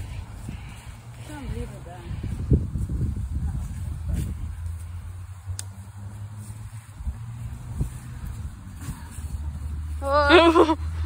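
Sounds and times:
low outdoor rumble: 0:00.0 - 0:11.0
faint clicks: 0:05.5 - 0:05.8.

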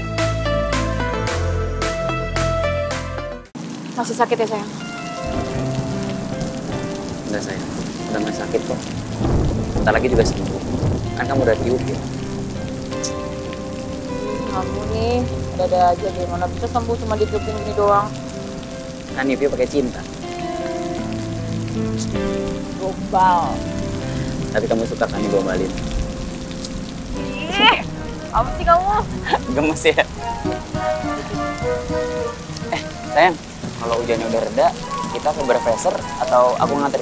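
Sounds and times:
soft background music: 0:00.0 - 0:37.0
steady rain falling: 0:00.0 - 0:37.0.

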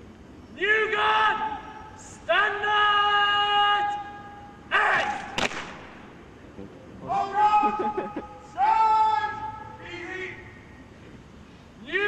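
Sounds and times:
person shouting a command: 0:00.6 - 0:05.2, 0:07.0 - 0:10.6, 0:11.8 - 0:12.0.

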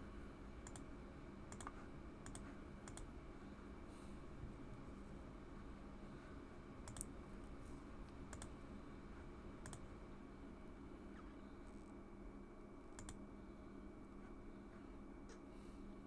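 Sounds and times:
steady low hum: 0:00.0 - 0:16.0
computer mouse clicks: 0:00.6 - 0:00.9, 0:01.5 - 0:03.1, 0:06.8 - 0:07.1, 0:08.3 - 0:08.6, 0:09.6 - 0:09.8, 0:13.0 - 0:13.2.

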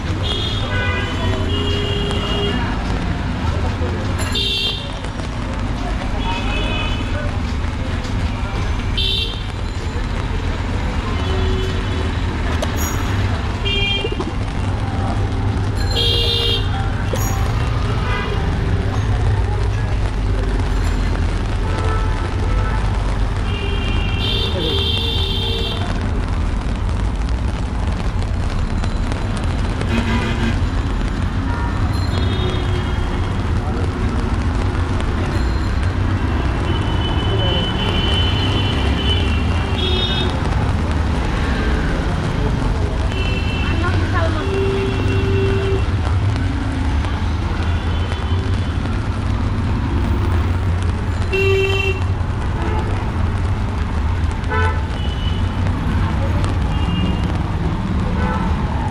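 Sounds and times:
traffic rumble: 0:00.0 - 0:58.9
voices of passersby: 0:00.0 - 0:58.9.

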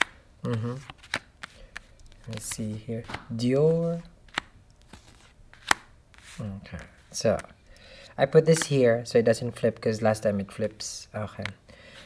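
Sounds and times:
cards dealt onto cloth table: 0:00.0 - 0:07.6.

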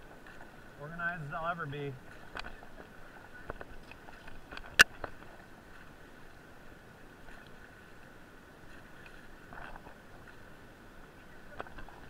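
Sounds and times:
rush of river rapids: 0:00.0 - 0:12.0
water splashing: 0:00.0 - 0:12.0.

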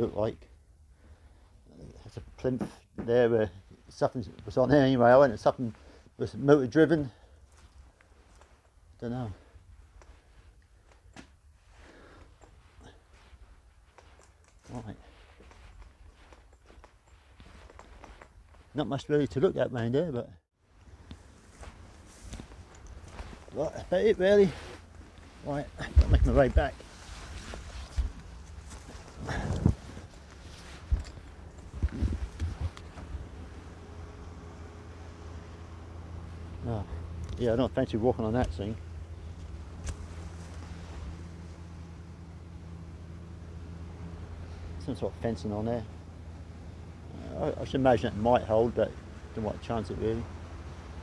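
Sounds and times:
faint footsteps: 0:07.2 - 0:19.2, 0:20.8 - 0:34.9
camera handling rumble: 0:25.9 - 0:33.5.

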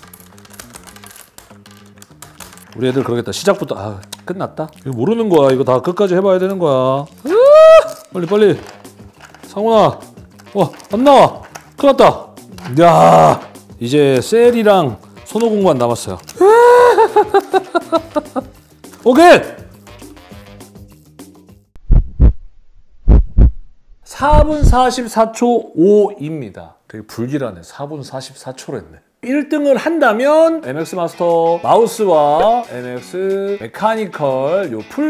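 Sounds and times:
high-pitched voice crying: 0:16.4 - 0:17.4
background music with bass line: 0:16.4 - 0:21.7.

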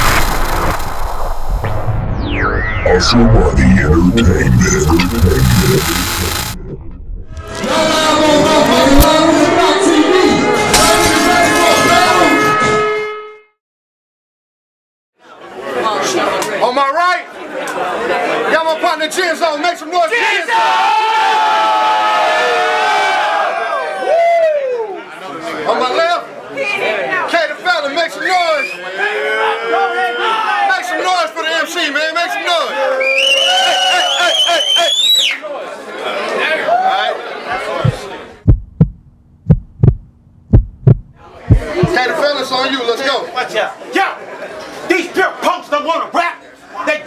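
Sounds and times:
crowd chatter: 0:02.8 - 0:10.6, 0:15.2 - 0:18.9, 0:35.4 - 0:38.4, 0:41.2 - 0:45.6
heartbeat thumps: 0:03.9 - 0:07.6, 0:37.8 - 0:42.0
crowd shouting and hollering: 0:07.4 - 0:12.4, 0:20.1 - 0:25.2, 0:28.9 - 0:31.1, 0:35.4 - 0:38.1.

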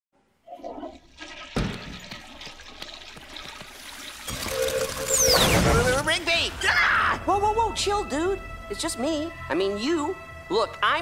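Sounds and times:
toilet flushing: 0:00.6 - 0:06.1.

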